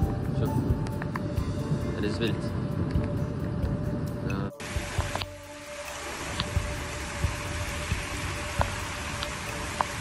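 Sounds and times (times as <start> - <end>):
faint background music: 0.0 - 10.0
rain and rushing floodwater: 4.6 - 10.0.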